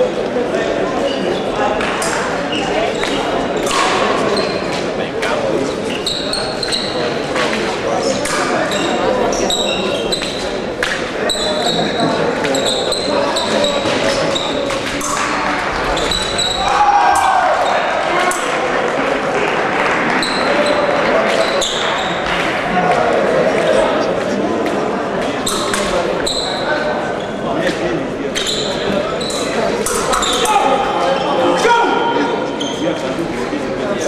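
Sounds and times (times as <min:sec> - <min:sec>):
murmur of voices echoing: 0:00.0 - 0:34.0
sneaker soles squeaking: 0:02.5 - 0:04.7, 0:05.8 - 0:07.2, 0:08.6 - 0:10.6, 0:11.2 - 0:16.7, 0:20.1 - 0:22.3, 0:25.4 - 0:27.5, 0:28.4 - 0:31.4, 0:32.4 - 0:33.1.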